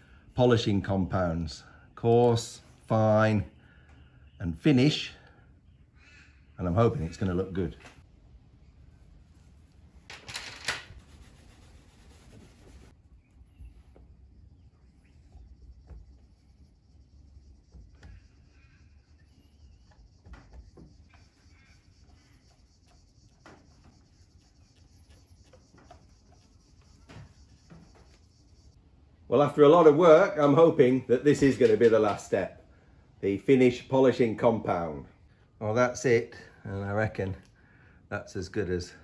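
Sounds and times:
cloth rubbing on hull: 10.9 - 12.9.

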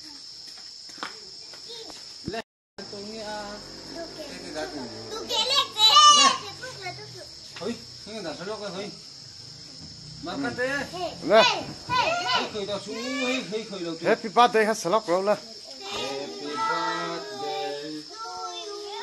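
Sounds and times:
crickets chirring: 0.0 - 19.0
children talking and calling out: 1.2 - 2.0, 3.4 - 8.2, 8.8 - 14.0, 15.2 - 19.0.

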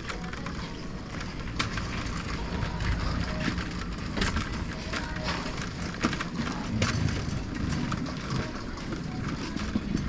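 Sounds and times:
faint rattles and ticks: 0.0 - 10.0.

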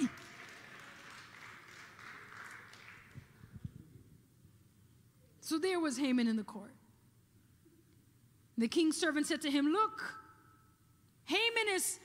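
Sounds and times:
faint scattered applause: 0.0 - 3.7.

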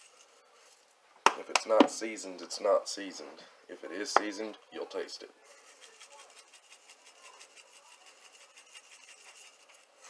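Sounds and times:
scratchy rubbing strokes: 5.4 - 10.0.

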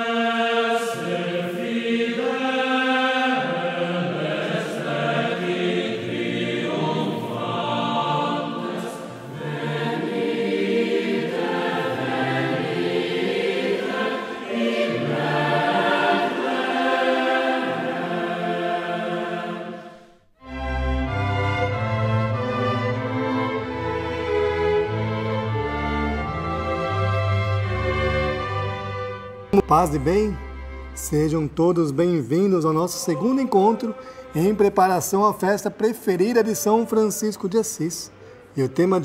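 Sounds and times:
boys' choir singing: 0.0 - 20.2, 32.0 - 38.0.

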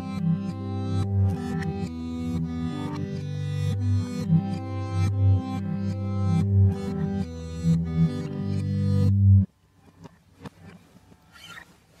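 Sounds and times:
reversed acoustic guitar chords: 0.0 - 11.8.

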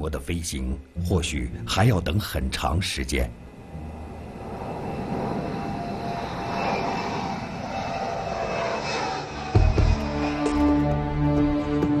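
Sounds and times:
music: 0.0 - 3.6, 9.4 - 12.0
jet engines roaring: 2.2 - 11.8.

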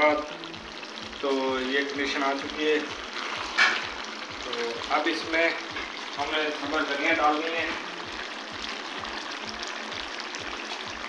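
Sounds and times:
curry sizzling in a pot: 0.0 - 11.0
background music beat: 0.1 - 11.0.

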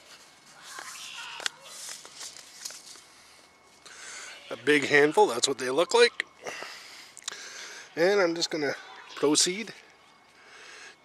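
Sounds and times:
seed packet rustling: 0.0 - 3.7.

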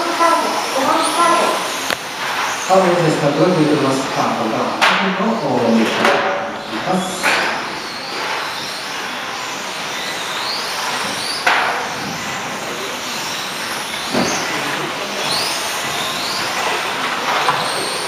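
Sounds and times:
rc car motors whining: 0.0 - 18.0
sharp knocks: 4.8 - 5.2, 5.9 - 6.4, 11.4 - 12.2.

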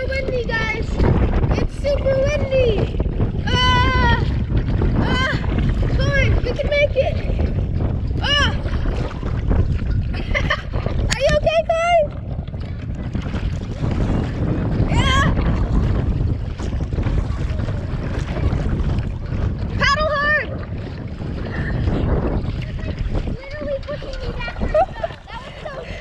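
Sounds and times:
kayak paddle splashing water: 0.0 - 26.0
wind buffeting microphone: 0.0 - 26.0.

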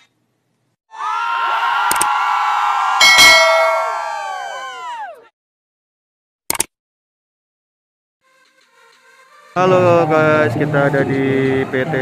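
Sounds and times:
sharp hits: 3.0 - 4.2
ringing bell-like tones: 3.0 - 4.4.

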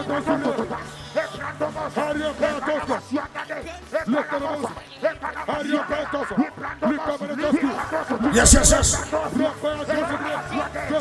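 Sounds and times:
man chanting prayer into microphone: 8.3 - 9.4.

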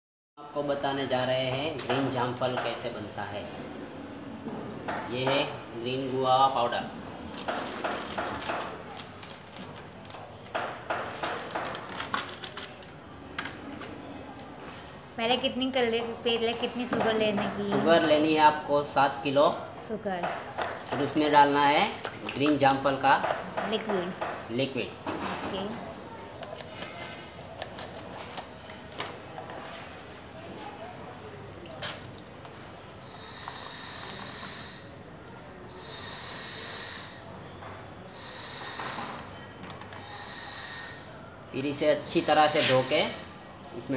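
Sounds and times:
plastic pouch crinkling: 7.4 - 10.2, 11.8 - 12.9
scissors snipping plastic sachet: 11.4 - 12.9
packet crinkling: 11.7 - 12.9.

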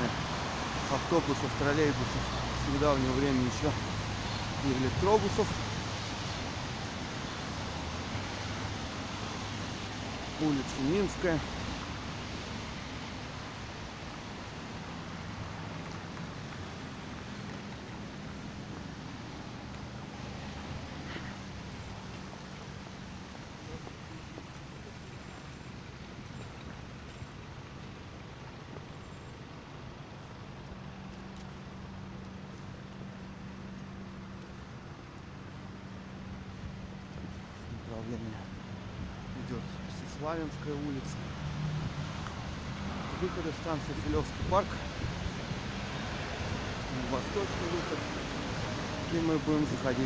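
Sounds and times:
cars on wet street: 0.0 - 50.0.

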